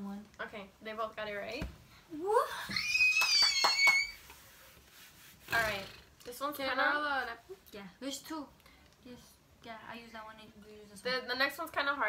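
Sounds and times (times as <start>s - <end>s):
girl squealing woo: 2.2s - 4.2s
sharp claps: 3.0s - 4.3s.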